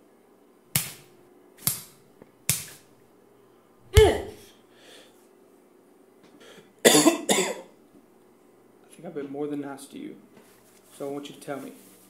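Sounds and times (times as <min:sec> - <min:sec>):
punch sound effects: 0:03.9 - 0:04.4.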